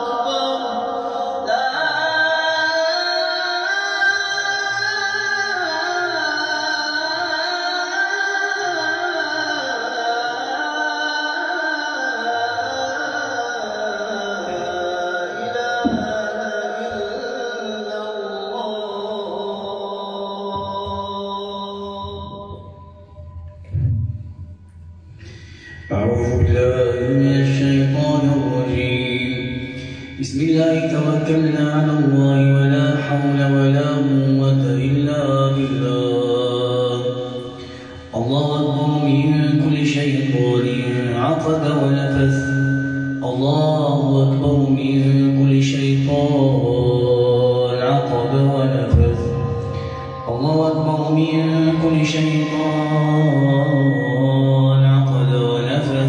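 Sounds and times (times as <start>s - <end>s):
man chanting melodically: 0.0s - 56.0s.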